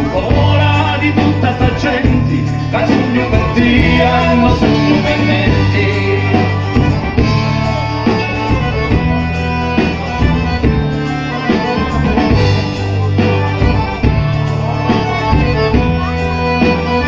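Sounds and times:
live folk band instrumental: 0:00.0 - 0:17.0.

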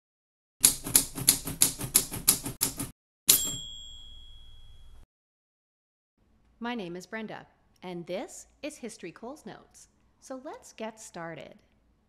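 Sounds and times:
typewriter keystrokes: 0:00.6 - 0:03.6
typewriter bell ringing: 0:02.6 - 0:05.0.

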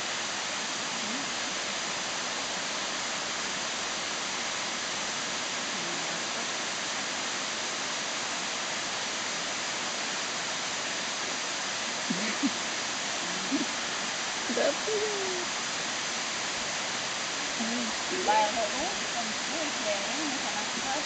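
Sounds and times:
running water rushing: 0:00.0 - 0:21.0.

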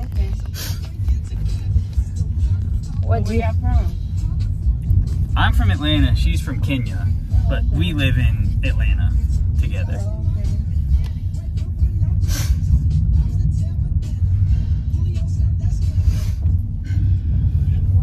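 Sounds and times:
car cabin road rumble: 0:00.0 - 0:18.0.

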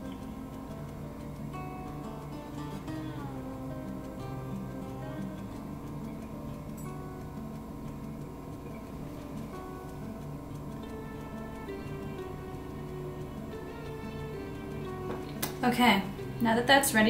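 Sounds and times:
soft instrumental music: 0:00.0 - 0:17.0.

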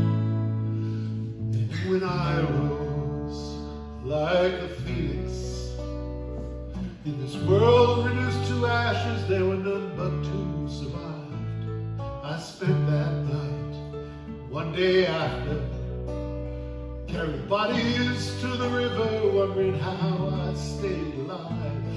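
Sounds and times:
acoustic guitars strumming: 0:00.0 - 0:21.9
bass guitar low notes: 0:00.0 - 0:21.9
man singing: 0:01.4 - 0:06.2, 0:06.8 - 0:16.2, 0:17.0 - 0:21.9.

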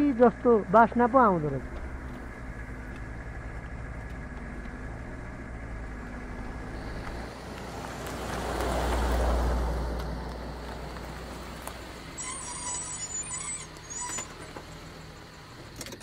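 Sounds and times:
van engine rumble: 0:00.0 - 0:16.0
vehicle passing whoosh: 0:01.6 - 0:12.2.

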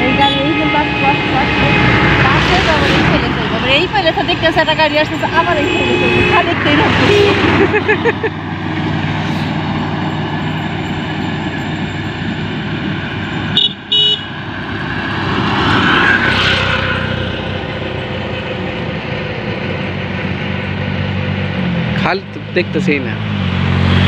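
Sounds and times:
horn toots: 0:00.0 - 0:03.2, 0:05.3 - 0:07.8, 0:13.5 - 0:14.4
auto-rickshaw passing close: 0:00.0 - 0:24.0.

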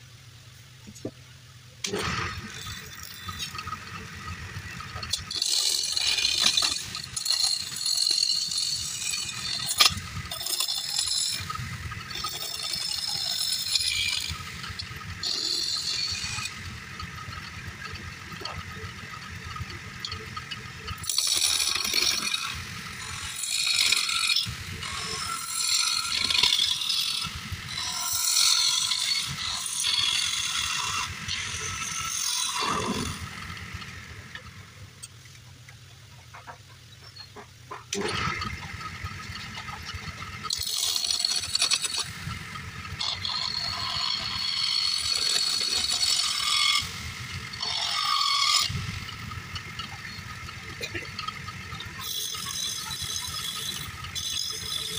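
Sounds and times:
lathe tool scraping wood: 0:01.8 - 0:34.7, 0:36.3 - 0:54.9.

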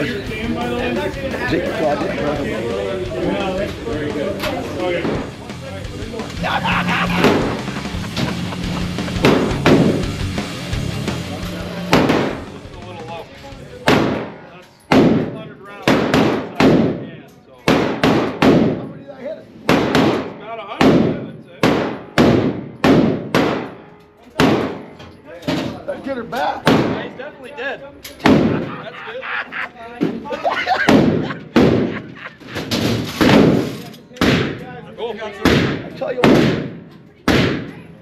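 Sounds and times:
hearty laughter: 0:06.2 - 0:09.6, 0:28.5 - 0:32.8
echoing gunshots: 0:07.0 - 0:10.0, 0:11.9 - 0:12.5, 0:13.8 - 0:17.0, 0:17.7 - 0:18.9, 0:19.6 - 0:23.8, 0:24.4 - 0:24.9, 0:26.6 - 0:27.1, 0:28.2 - 0:28.7, 0:30.8 - 0:32.1, 0:32.8 - 0:34.6, 0:35.4 - 0:37.8.

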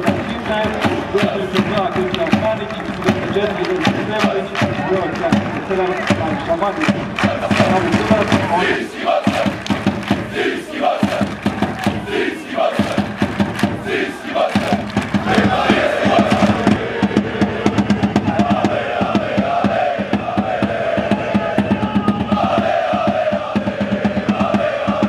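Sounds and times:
fast steady beat: 0:00.0 - 0:25.0
football crowd chanting: 0:00.0 - 0:25.0.

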